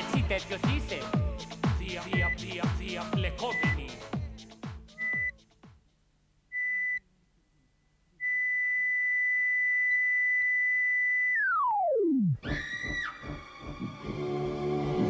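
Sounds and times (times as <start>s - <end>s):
heart monitor beeps: 2.2s - 2.5s, 3.5s - 3.8s, 5.0s - 5.4s, 6.5s - 7.0s
flatline tone: 7.6s - 12.4s.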